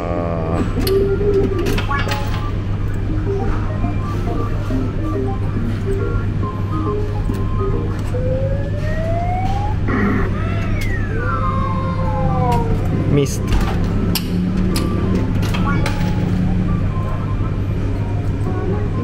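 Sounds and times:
steady low hum: 0.0 - 19.0
electronic sweeps: 7.5 - 13.2.

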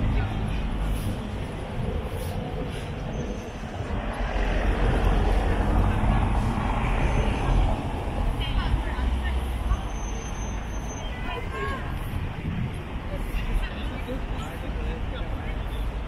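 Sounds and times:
car engines in traffic: 0.0 - 11.1.

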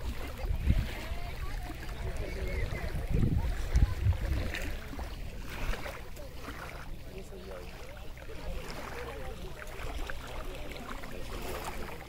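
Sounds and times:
wind buffeting microphone: 0.0 - 5.9
waves lapping on pebbles: 0.0 - 12.0.

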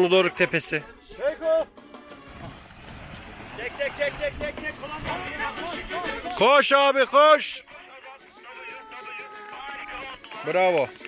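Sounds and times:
voices calling out: 3.4 - 10.8.

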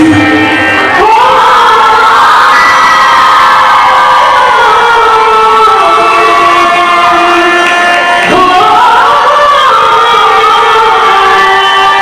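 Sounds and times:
amplified folk-dance music: 0.0 - 12.0
crowd cheering: 0.0 - 12.0.

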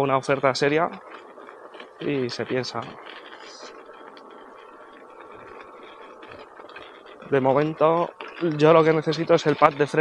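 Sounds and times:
faint motor whine: 0.0 - 10.0
tyres rolling on gravel: 0.0 - 10.0
small ticks: 0.3 - 10.0.

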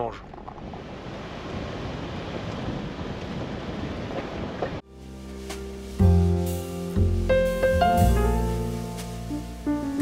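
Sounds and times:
wind rushing on microphone: 0.2 - 4.8
music: 4.8 - 10.0.

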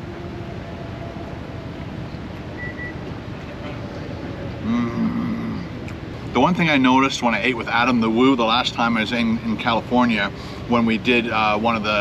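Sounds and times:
traffic rumble: 0.0 - 12.0
man humming mmm while chewing: 4.6 - 6.0.

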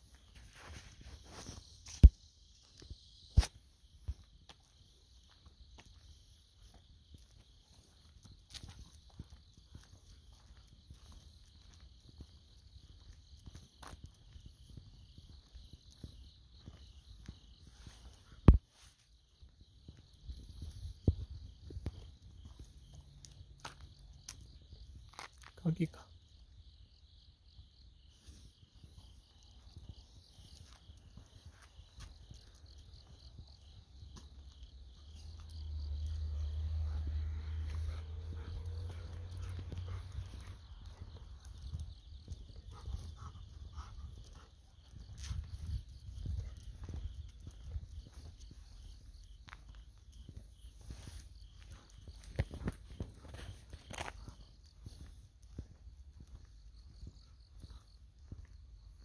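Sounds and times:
footsteps on a path: 0.0 - 59.0
insects trilling: 0.0 - 59.0
wind rumble on microphone: 19.8 - 22.7, 37.7 - 59.0.

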